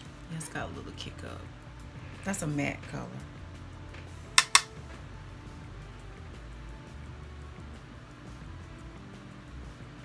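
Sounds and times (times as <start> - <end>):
brush tapping on palette: 4.4 - 4.7.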